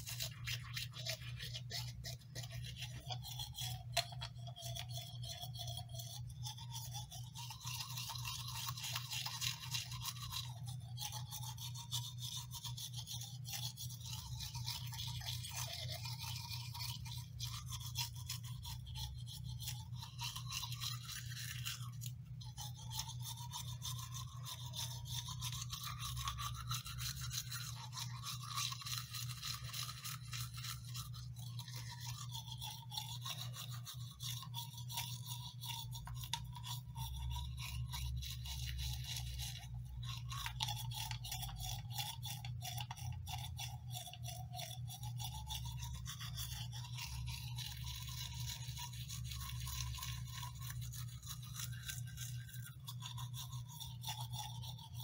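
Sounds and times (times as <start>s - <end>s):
toothbrush scrubbing teeth: 0.0s - 55.0s.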